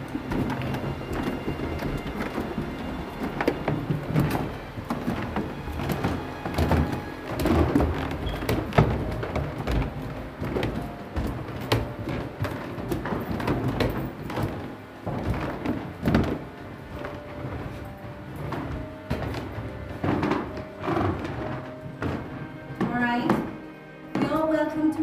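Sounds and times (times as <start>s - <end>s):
footsteps on wooden stairs: 0.0s - 25.0s
music: 0.0s - 25.0s.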